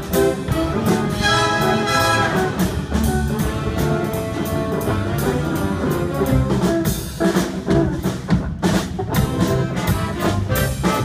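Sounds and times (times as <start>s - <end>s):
brass and saxophones holding chords: 0.0s - 6.9s, 9.2s - 11.0s.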